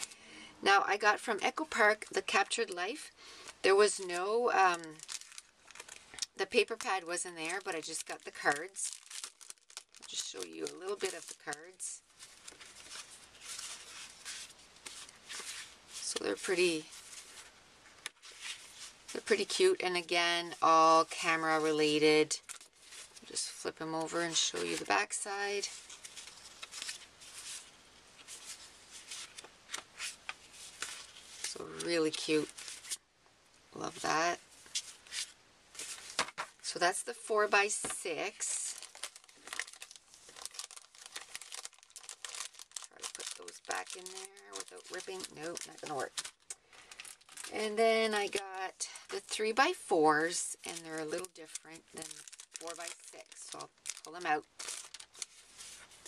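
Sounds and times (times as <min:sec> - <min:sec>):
paper cards rustling: 0:03.4 - 0:19.6, 0:20.6 - 0:23.3, 0:24.0 - 0:33.0, 0:33.9 - 0:36.6, 0:37.7 - 0:49.5, 0:50.2 - 0:56.0
plastic sleeve crinkling: 0:03.4 - 0:33.0, 0:33.9 - 0:36.7, 0:37.6 - 0:56.0.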